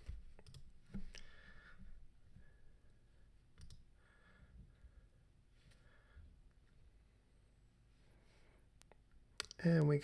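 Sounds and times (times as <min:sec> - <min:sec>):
computer mouse clicks: 0:00.4 - 0:01.3, 0:03.6 - 0:03.9.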